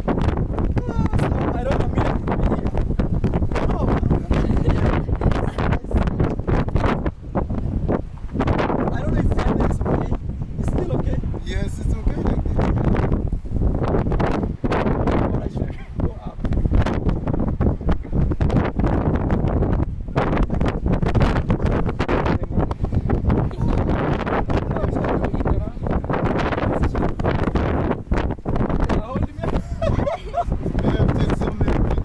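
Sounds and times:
strong wind buffeting microphone: 0.0 - 32.0.

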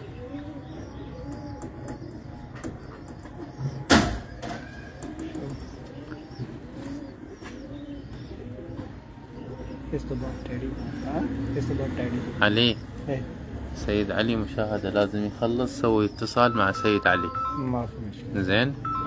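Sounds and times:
pigeons cooing: 0.0 - 19.0.

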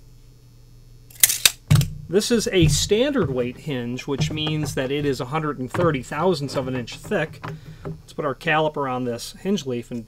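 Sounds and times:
metal objects clicking: 1.1 - 1.9
dull thump on desk: 1.7 - 8.2.

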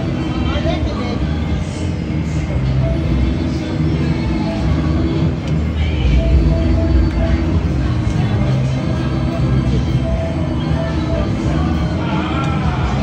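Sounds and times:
background music: 0.0 - 13.0
hum of machines and people: 0.0 - 13.0
gaming machine beeps: 2.5 - 12.2.

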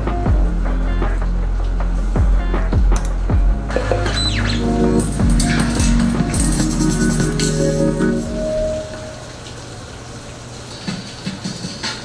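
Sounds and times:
background music: 0.0 - 9.4
rain falling: 4.6 - 12.0.

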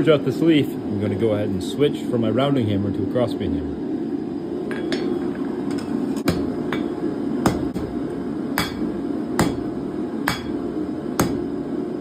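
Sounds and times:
hammer striking hot steel on anvil: 4.7 - 11.5.

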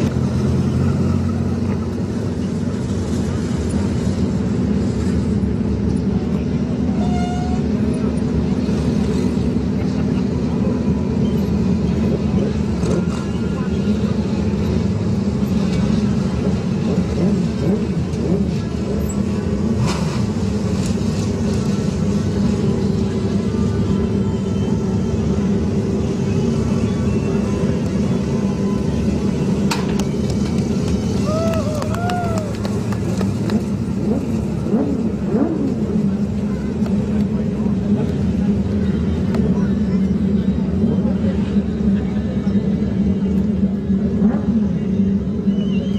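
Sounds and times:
race car engine at low revs: 0.0 - 45.9.

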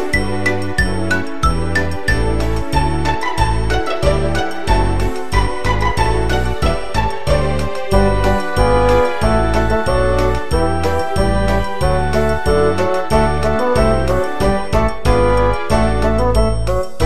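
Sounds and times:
children's song instrumental: 0.0 - 17.0.

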